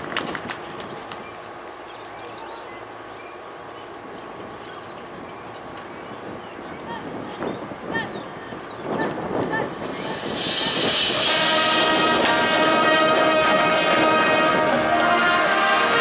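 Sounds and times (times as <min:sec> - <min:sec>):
marching band playing: 0:09.7 - 0:16.0.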